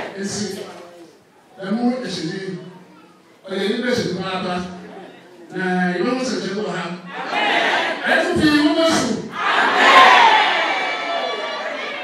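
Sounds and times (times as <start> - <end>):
crowd shouting: 7.1 - 8.0, 9.3 - 12.0.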